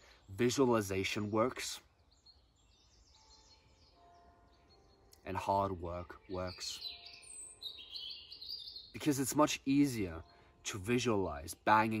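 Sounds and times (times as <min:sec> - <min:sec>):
bird singing high notes: 0:00.0 - 0:12.0.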